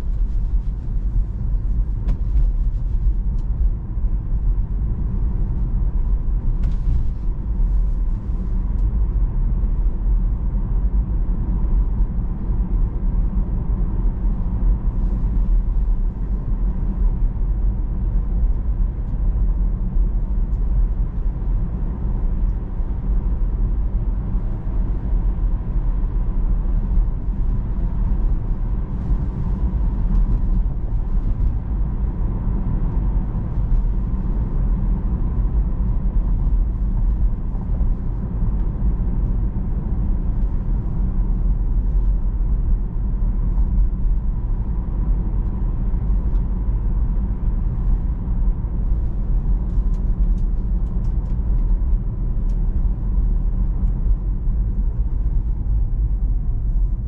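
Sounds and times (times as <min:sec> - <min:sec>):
road and tyre rumble: 0:00.0 - 0:57.0.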